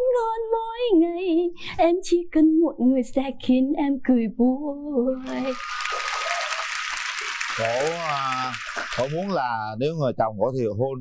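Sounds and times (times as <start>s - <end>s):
audience applause: 5.2s - 9.6s
man speaking: 7.6s - 11.0s.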